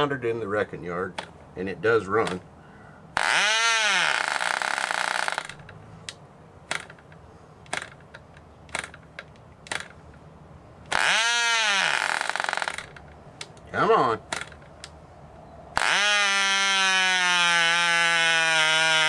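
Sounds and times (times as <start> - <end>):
model engine buzzing: 15.8 - 19.0.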